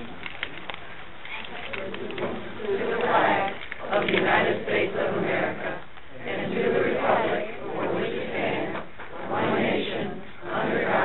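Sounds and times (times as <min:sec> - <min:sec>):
people reciting in unison: 0:01.8 - 0:11.0.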